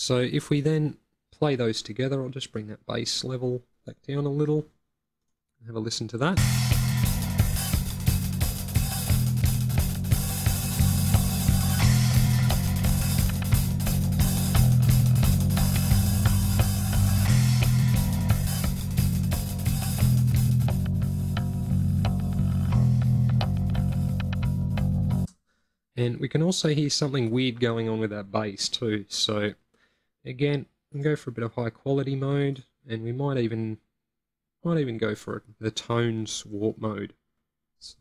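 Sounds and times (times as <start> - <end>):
drum hits: 6.4 - 25.3
warped bass line: 6.4 - 25.3.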